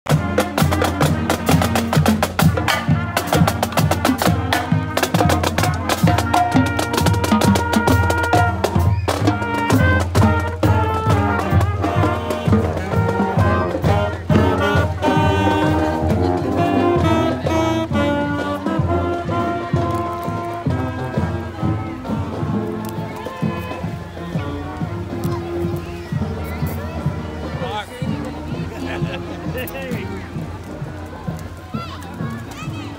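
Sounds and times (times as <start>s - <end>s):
rapid snare drum strokes: 0.1s - 31.4s
saxophones and horns playing tune: 0.1s - 31.4s
bass drums beat: 0.1s - 32.9s
marching band playing: 0.1s - 32.9s.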